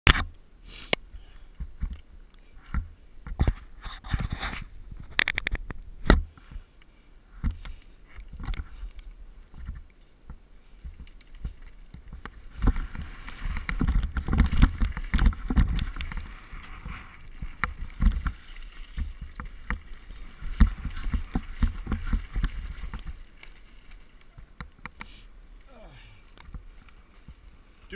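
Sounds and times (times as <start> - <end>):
bike knocking and rattling: 7.4 - 25.0.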